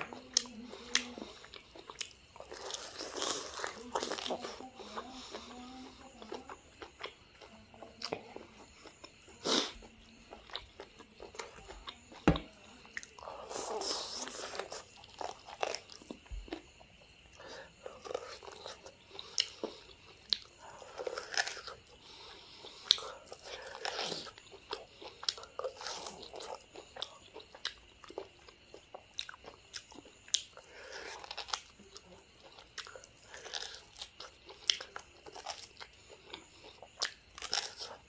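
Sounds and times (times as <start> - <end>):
biting and chewing meat: 17.9 - 38.0.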